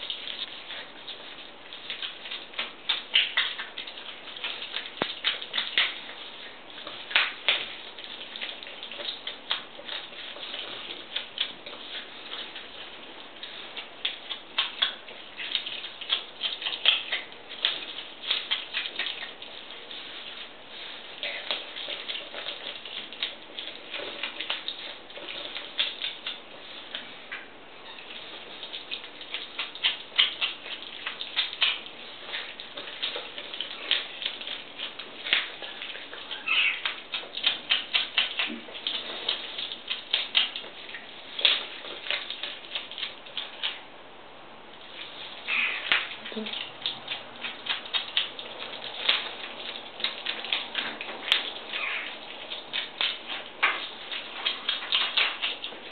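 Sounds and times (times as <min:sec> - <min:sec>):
otter chewing and crunching fish: 0:00.0 - 0:43.9, 0:44.8 - 0:55.9.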